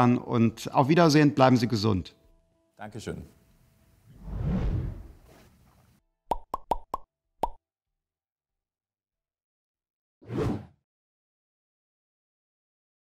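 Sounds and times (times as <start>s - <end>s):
deep whoosh: 4.1s - 5.2s.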